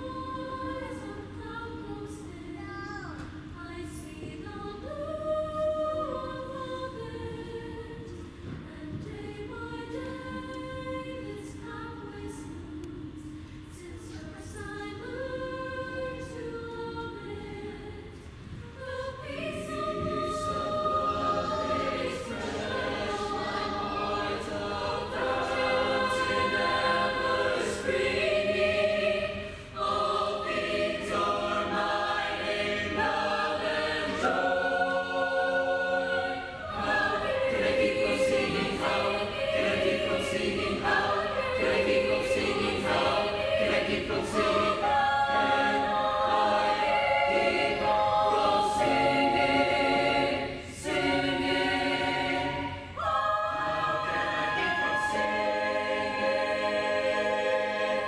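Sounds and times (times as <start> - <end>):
mixed choir singing unaccompanied: 0.0 - 58.0.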